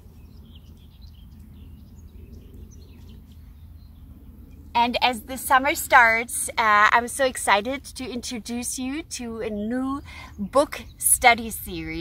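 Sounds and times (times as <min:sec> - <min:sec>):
steady low rumble: 0:00.0 - 0:10.1
small birds chirping: 0:00.0 - 0:12.0.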